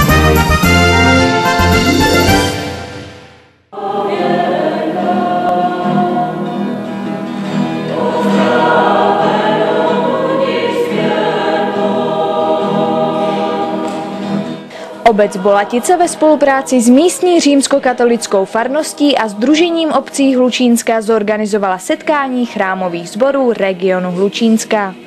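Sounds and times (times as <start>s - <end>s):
news intro jingle: 0.0s - 3.5s
church choir singing: 0.4s - 20.8s.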